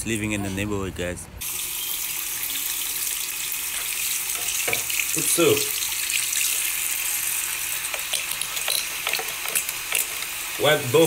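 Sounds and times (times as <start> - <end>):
sink tap running: 1.4 - 11.0.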